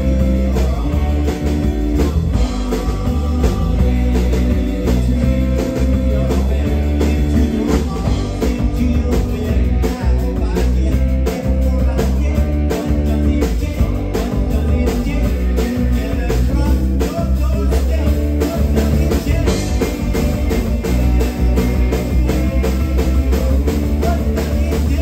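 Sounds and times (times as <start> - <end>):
drum kit: 0.0 - 25.0
electric bass: 0.0 - 25.0
electric guitar: 0.0 - 25.0
person singing: 0.0 - 25.0.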